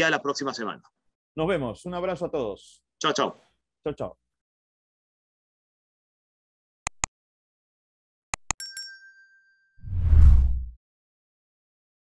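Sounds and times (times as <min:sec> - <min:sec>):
deep whoosh with low boom: 0:09.8 - 0:10.8.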